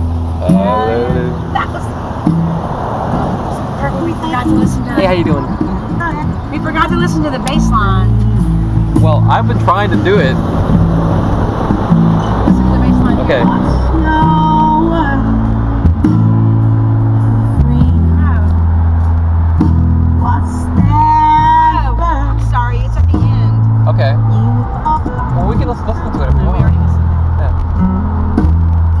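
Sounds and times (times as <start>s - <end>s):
heavy bassline: 0.0s - 1.7s, 4.0s - 29.0s
music on car stereo: 0.0s - 29.0s
voice: 0.4s - 1.9s, 3.8s - 8.1s, 9.0s - 10.4s, 12.6s - 13.9s, 21.7s - 24.2s, 25.0s - 27.6s.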